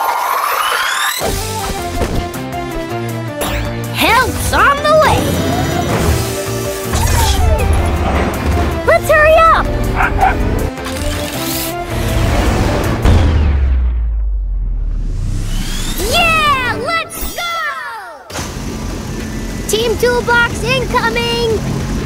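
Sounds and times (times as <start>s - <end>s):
cartoon background music: 0.6s - 13.8s, 15.8s - 17.9s
dog barking and yipping: 8.9s - 10.6s
low rumble: 12.0s - 16.6s.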